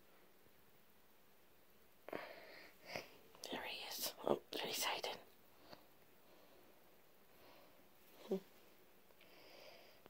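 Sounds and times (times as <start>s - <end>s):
person whispering: 2.9s - 5.3s.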